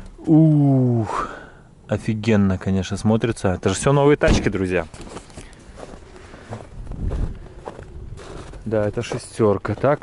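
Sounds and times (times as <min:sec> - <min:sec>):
footsteps walking: 0:04.8 - 0:10.0.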